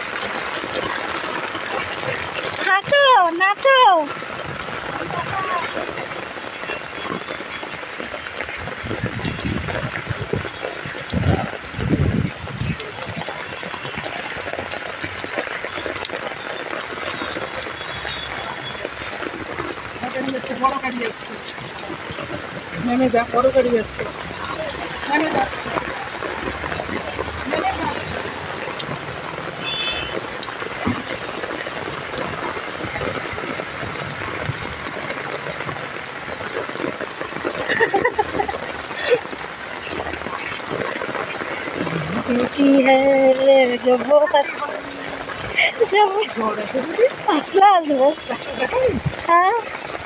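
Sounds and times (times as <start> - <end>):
heavy rain on wet street: 0.0 - 50.0.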